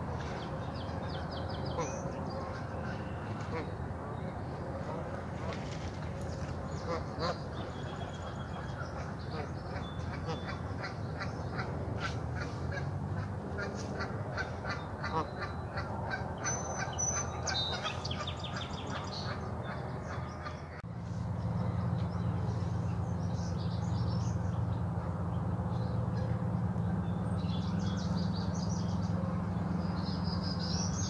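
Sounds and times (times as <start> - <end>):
birds chirping and calling: 13.6 - 20.8.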